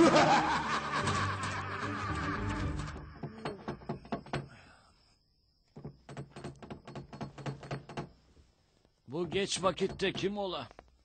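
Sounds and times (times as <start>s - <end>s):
rapid knocking on a door: 3.2s - 4.5s, 5.8s - 8.2s, 9.3s - 10.4s.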